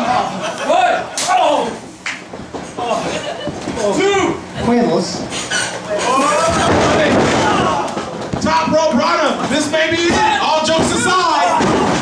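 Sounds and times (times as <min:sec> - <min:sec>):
voices talking and shouting: 0:02.8 - 0:12.0.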